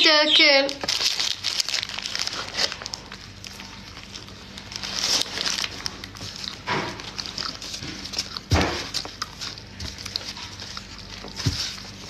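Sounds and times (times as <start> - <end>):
paper wrapper crinkling: 0.0 - 12.0
chewing and mouth noises: 0.9 - 12.0.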